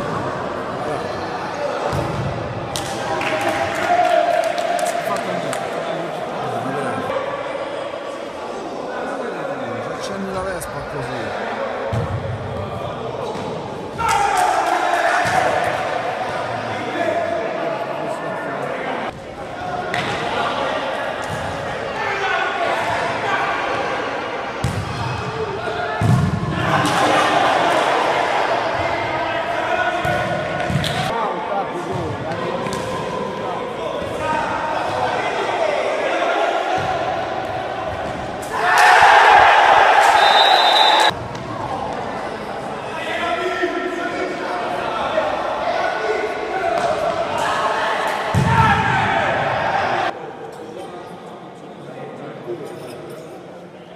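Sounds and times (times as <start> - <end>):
players shouting: 34.0 - 50.2.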